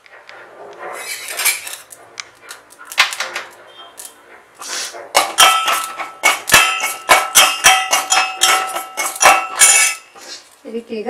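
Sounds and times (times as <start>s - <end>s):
spoon clanging in metal pot: 5.2s - 10.2s.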